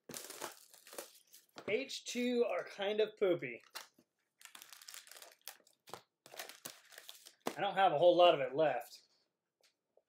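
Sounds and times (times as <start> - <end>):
foil packs crinkling: 0.0 - 1.5, 3.6 - 7.6.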